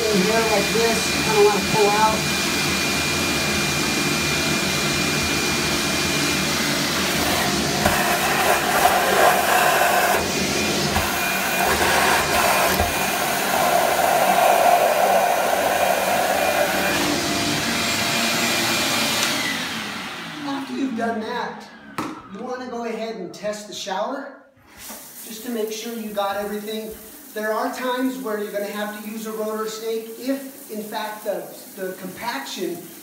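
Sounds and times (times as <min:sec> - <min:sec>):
shop vacuum sucking water: 0:00.0 - 0:22.6, 0:24.6 - 0:33.0.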